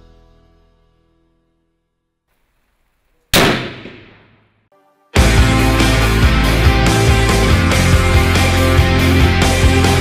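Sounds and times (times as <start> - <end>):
rifle shot: 3.3 - 4.6.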